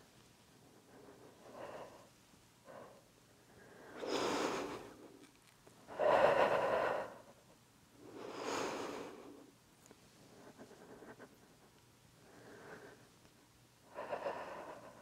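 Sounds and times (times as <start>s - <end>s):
woman breathing hard: 2.7s - 5.2s, 5.9s - 7.4s, 8.1s - 9.4s, 13.9s - 15.0s.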